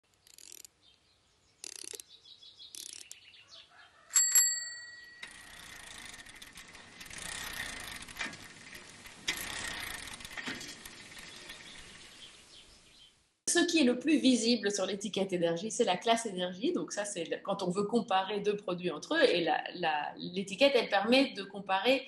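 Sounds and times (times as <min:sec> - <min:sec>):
scattered clicks: 0:01.6 - 0:02.1, 0:02.7 - 0:03.2.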